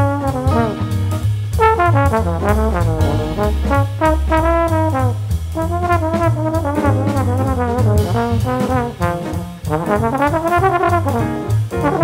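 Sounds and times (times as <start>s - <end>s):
band rhythm section: 0.0s - 12.0s
jazz trombone melody: 0.0s - 12.0s.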